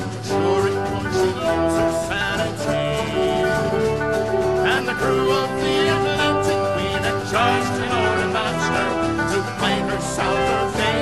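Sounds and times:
plucked and strummed strings: 0.0s - 11.0s.

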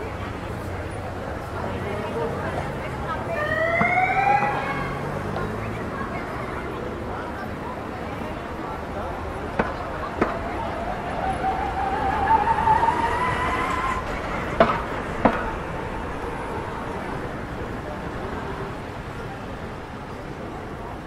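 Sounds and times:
people's voices: 0.0s - 21.0s
car passing with rising whine: 10.0s - 17.6s.

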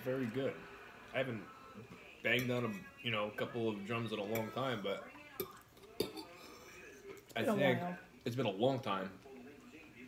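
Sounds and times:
cutlery clicking on plate: 5.4s - 6.4s.

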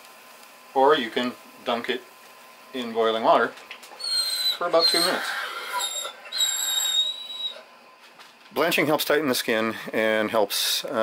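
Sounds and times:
dog whining high-pitched: 4.0s - 7.7s.

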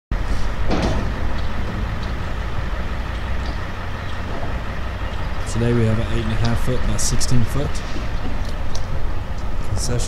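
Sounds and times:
low outdoor rumble: 0.1s - 10.0s.

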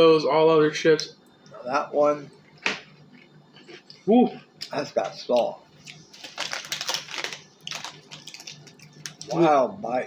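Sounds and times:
snack bag crinkling: 5.4s - 9.4s.

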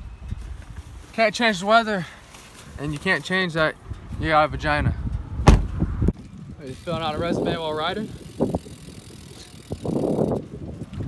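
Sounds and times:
bike tyres rolling on pavement: 5.7s - 11.0s.

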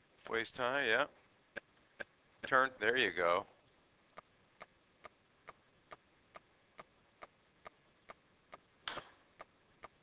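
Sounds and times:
faint even ticking: 9.3s - 10.0s.

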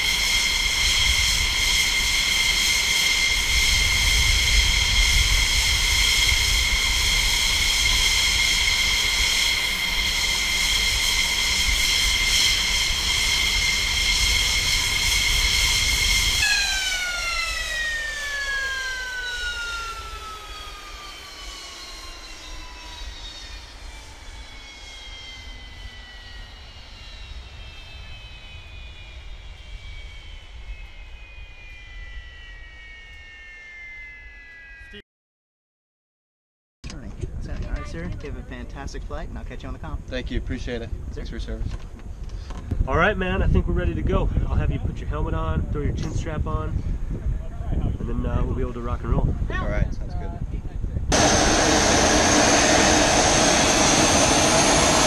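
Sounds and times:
jet engine whining: 0.0s - 35.0s, 37.7s - 55.0s
jet turbine spooling down: 0.0s - 35.0s, 37.3s - 55.0s.

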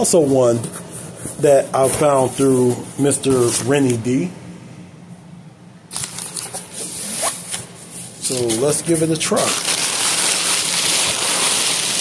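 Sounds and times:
packing paper crinkling: 5.9s - 7.4s, 8.2s - 12.0s.

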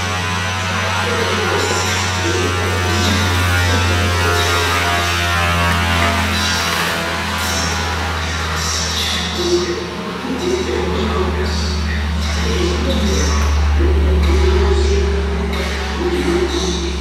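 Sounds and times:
loud low drone: 0.0s - 17.0s
noisy wash of layered tones: 0.0s - 17.0s.

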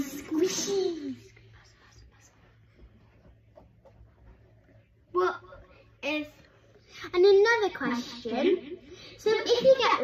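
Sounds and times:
girl speaking: 0.0s - 1.4s, 5.1s - 10.0s
faint low hum: 0.0s - 10.0s.

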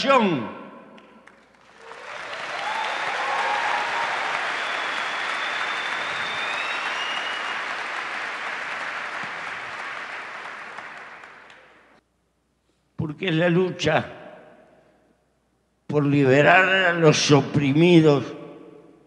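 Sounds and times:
audience applauding: 1.0s - 12.0s.

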